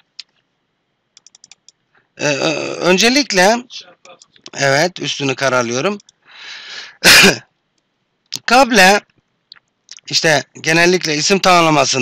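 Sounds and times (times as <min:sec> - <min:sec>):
soft breath in: 0:06.3 - 0:07.0
man sneezing: 0:06.9 - 0:07.4.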